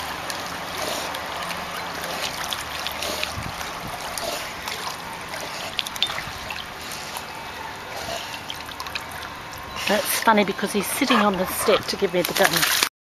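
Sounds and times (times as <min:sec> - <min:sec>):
pool water trickling and lapping: 0:00.0 - 0:12.9
small splashes: 0:00.0 - 0:12.9
woman's voice: 0:09.9 - 0:12.9.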